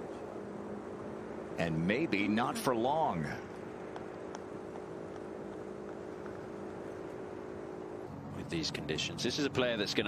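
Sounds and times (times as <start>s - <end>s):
faint outdoor background noise: 0.0s - 10.0s
steady low hum: 0.0s - 10.0s.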